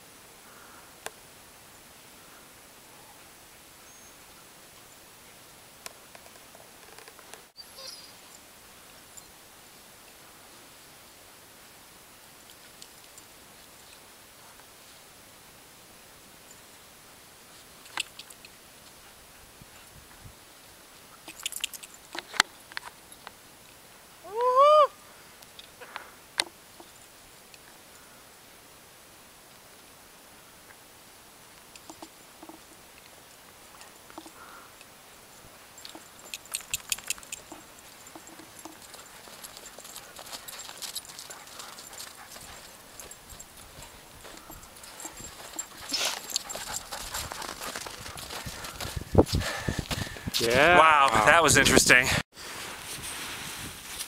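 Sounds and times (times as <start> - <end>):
faint outdoor hiss: 0.0 - 54.0.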